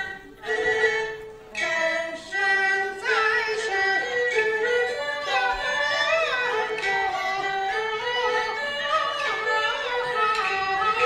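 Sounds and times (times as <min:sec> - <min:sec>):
high voice singing opera: 0:00.0 - 0:11.0
opera band accompaniment: 0:00.0 - 0:11.0.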